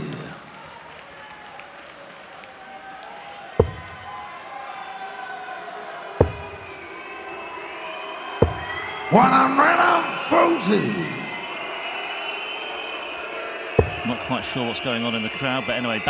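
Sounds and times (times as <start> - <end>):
crowd noise: 0.0 - 16.0.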